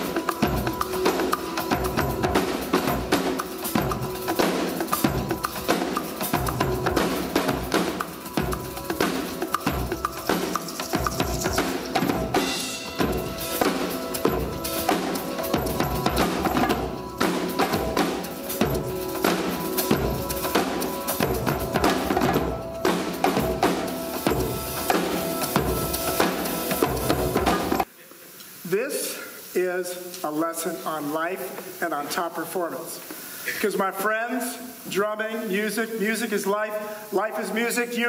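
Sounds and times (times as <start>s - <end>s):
acoustic drum kit groove: 0.0s - 27.9s
man speaking: 28.7s - 38.0s.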